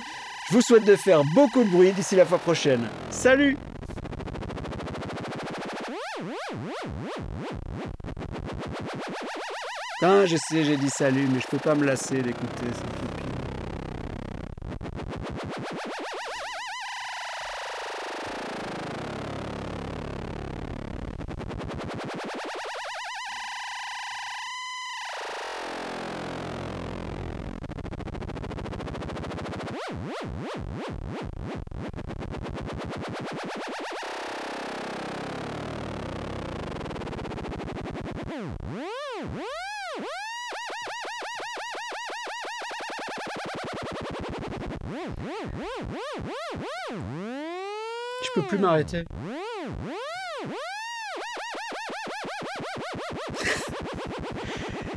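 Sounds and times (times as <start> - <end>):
synthesizer laser-like pitch sweeps: 0.0 - 3.6, 8.6 - 13.5.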